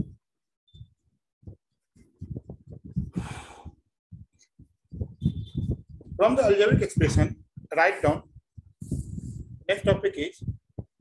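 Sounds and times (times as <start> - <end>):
faint low thumps: 0.8 - 11.0
breath into microphone: 2.2 - 3.9, 8.7 - 9.6.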